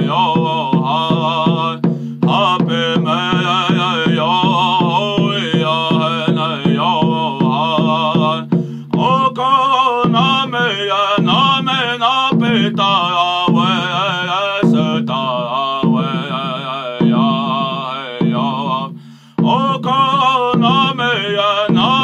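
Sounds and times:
man chanting a song: 0.0 - 22.0
slow steady drum beat: 0.0 - 22.0.

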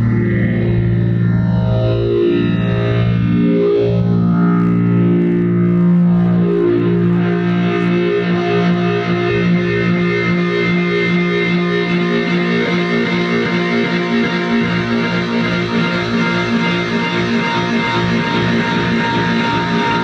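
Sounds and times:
processed electric piano: 3.2 - 20.0.

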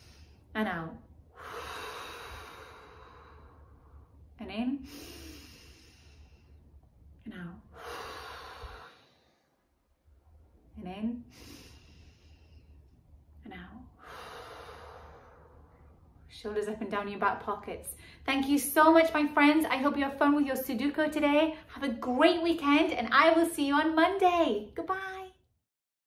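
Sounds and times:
woman breathing out: 1.3 - 4.1, 7.7 - 9.7, 11.3 - 12.8, 14.0 - 15.9.

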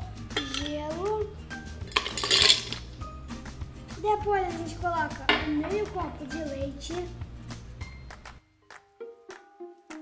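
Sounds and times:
ice cubes clattering in blender jar: 1.9 - 2.8.

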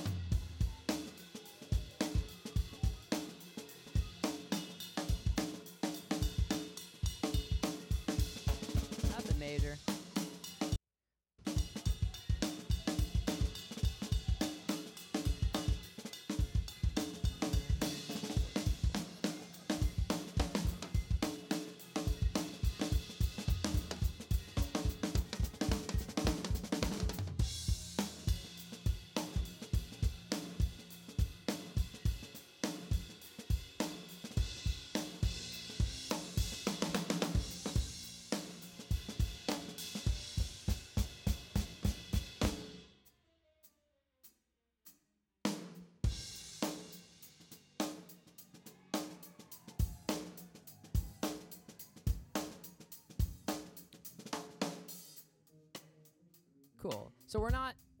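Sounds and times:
drum kit playing groove: 0.0 - 10.8, 11.4 - 42.8, 45.5 - 55.2, 56.9 - 57.9.

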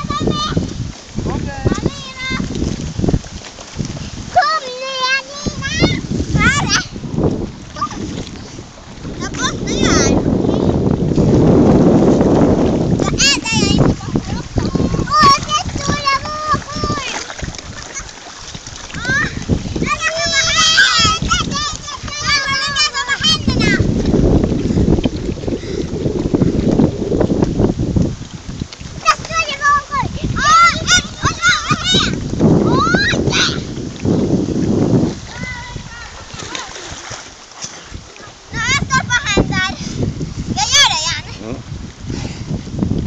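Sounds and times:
waves splashing against jetty: 0.0 - 43.0.

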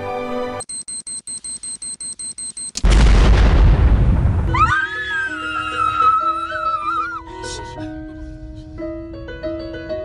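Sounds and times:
explosion sound effect: 2.8 - 4.7.

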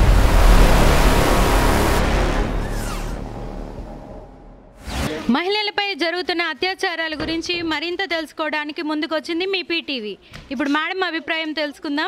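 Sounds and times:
rushing burst with deep rumble: 0.0 - 4.8.

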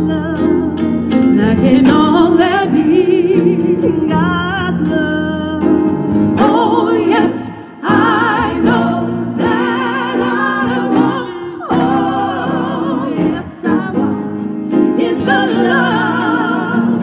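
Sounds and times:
electric bass: 0.0 - 17.0
grand piano: 0.0 - 17.0
woman singing gospel song: 0.0 - 17.0.

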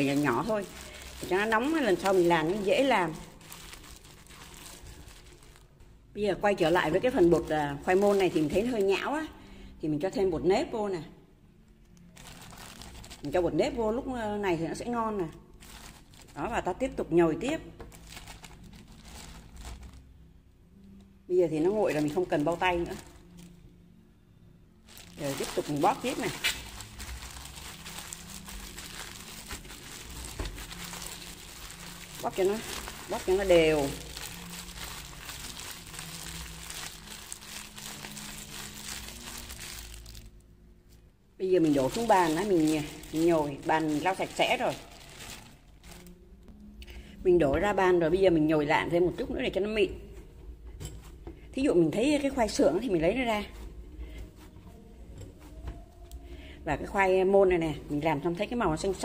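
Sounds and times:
plastic bag crinkling: 0.0 - 5.8, 6.5 - 9.1, 12.0 - 13.5, 15.2 - 16.7, 17.8 - 20.1, 21.6 - 23.6, 24.9 - 40.4, 41.4 - 46.2.

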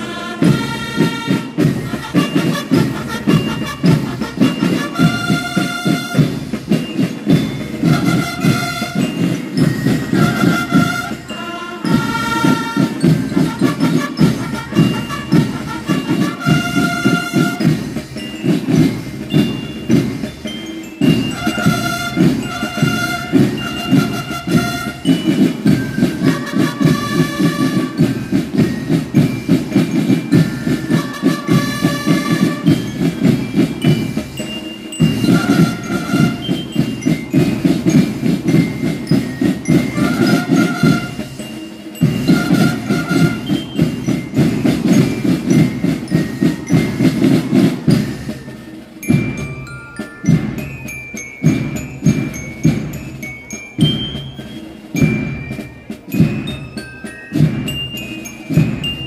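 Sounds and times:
band melody instruments: 0.0 - 59.0
snare and bass drums marching: 0.0 - 59.0.

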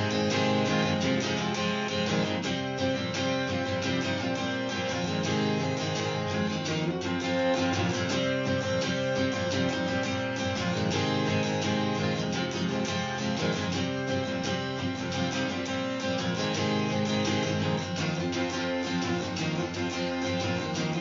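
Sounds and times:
acoustic guitar strumming: 0.0 - 21.0.

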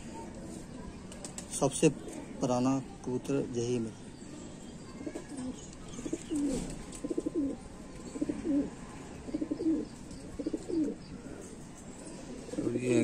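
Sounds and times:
pigeons cooing: 5.0 - 13.0.

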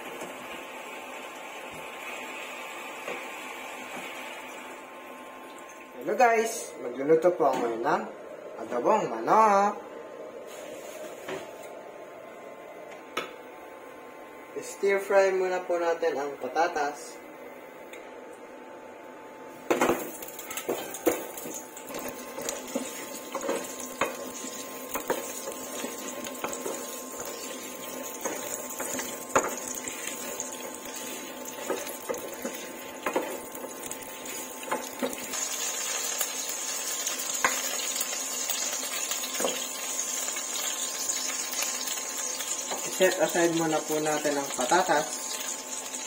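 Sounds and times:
potatoes sizzling in frying pan: 19.8 - 46.0.

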